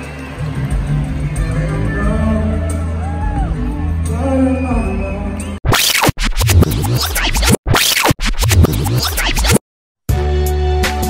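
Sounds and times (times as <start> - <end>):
live concert audio: 0.0 - 5.6
stuttering sped-up rewind effect: 5.6 - 9.6.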